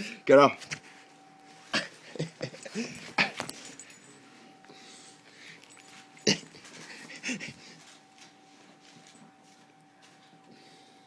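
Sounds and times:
dog breathing hard: 0:06.6 - 0:07.8.

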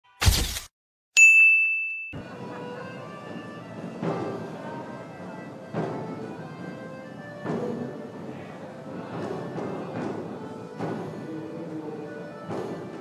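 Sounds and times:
bright ding: 0:01.2 - 0:02.2
crowd in reverberant hall: 0:02.2 - 0:13.0.

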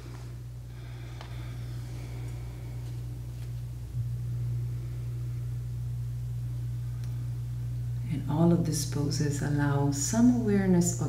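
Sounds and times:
faint room noise: 0:00.0 - 0:11.0
steady low hum: 0:00.0 - 0:11.0.

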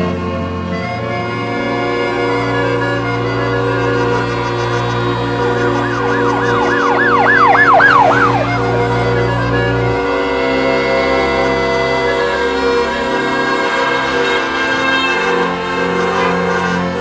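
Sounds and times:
sustained music: 0:03.4 - 0:10.3
siren yelping: 0:04.1 - 0:10.0.

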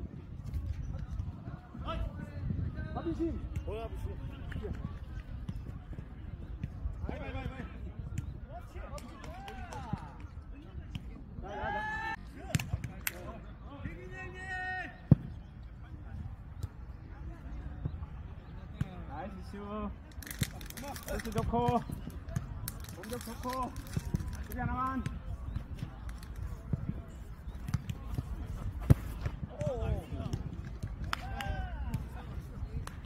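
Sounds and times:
players shouting: 0:31.1 - 0:32.4.

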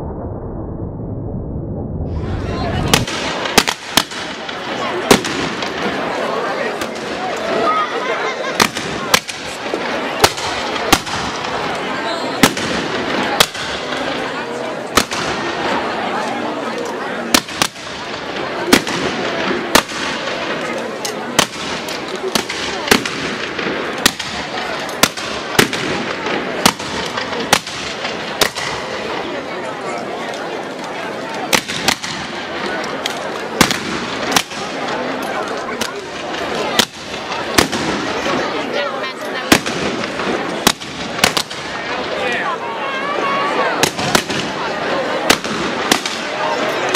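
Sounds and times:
chatter of large crowd: 0:02.0 - 0:46.9
shotgun blasts: 0:02.9 - 0:05.8, 0:21.4 - 0:28.8, 0:31.5 - 0:32.4, 0:33.6 - 0:34.8, 0:35.8 - 0:38.3, 0:39.5 - 0:41.8, 0:45.3 - 0:46.4.

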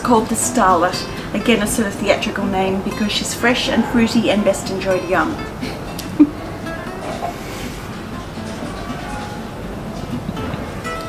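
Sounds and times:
faint plucked-string notes: 0:00.0 - 0:11.0
quiet background music: 0:00.0 - 0:11.0.

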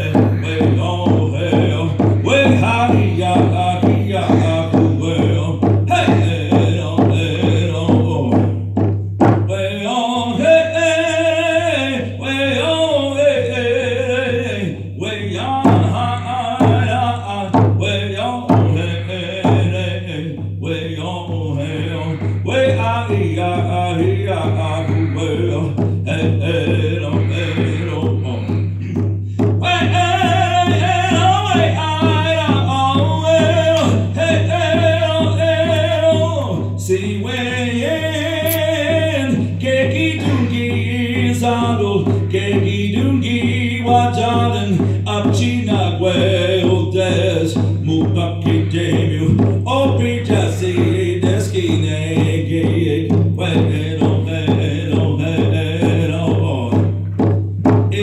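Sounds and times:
man singing a held note: 0:00.0 - 0:05.4, 0:26.8 - 0:29.0, 0:37.5 - 0:39.0
man singing a long note: 0:00.0 - 0:08.3, 0:09.6 - 0:28.7.

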